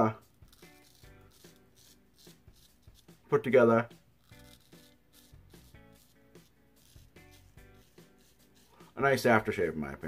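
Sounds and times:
razor scraping stubble: 0.0 - 9.7
faint soft background music: 0.0 - 10.0.

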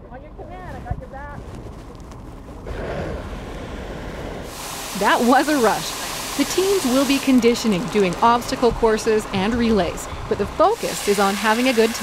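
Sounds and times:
hose nozzle spraying water: 4.4 - 9.0, 10.6 - 12.0.

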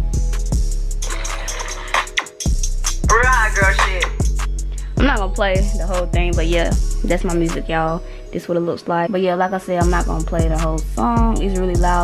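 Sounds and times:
hip-hop track from laptop speakers: 0.0 - 4.7.

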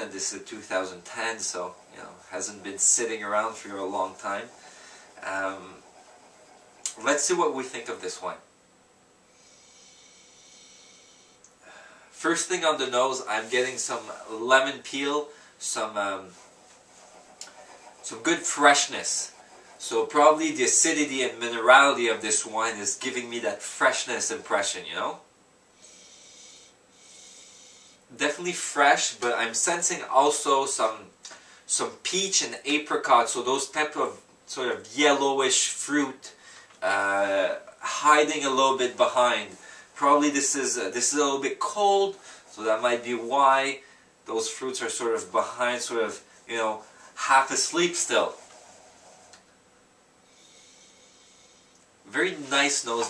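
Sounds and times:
person sniffing: 4.5 - 7.0, 9.3 - 12.1, 25.8 - 28.0, 50.2 - 51.8.

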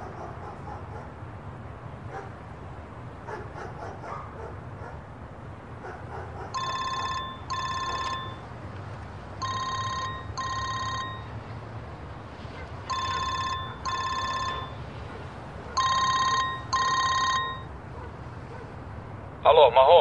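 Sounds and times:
telephone ringing: 6.6 - 8.5, 9.4 - 11.4, 12.9 - 14.8, 15.8 - 17.7.

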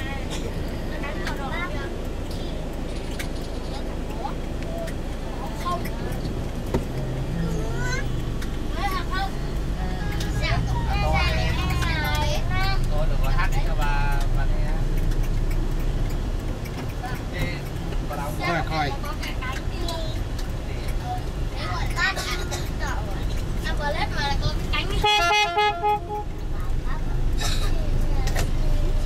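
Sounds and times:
engine and road rumble: 0.0 - 29.0
vehicle horn short toots: 25.0 - 26.3.

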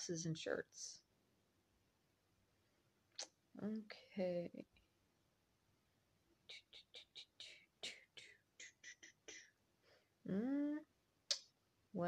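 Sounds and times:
woman whispering: 3.6 - 4.6, 6.5 - 9.6, 10.3 - 10.9.

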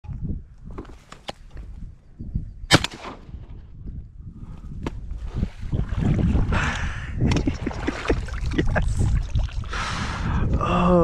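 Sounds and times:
shotgun shot: 2.7 - 3.5.

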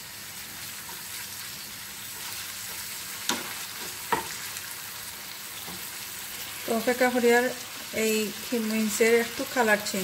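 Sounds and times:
meat sizzling in frying pan: 0.0 - 10.0
spatula scraping and knocking pan: 2.2 - 4.5.

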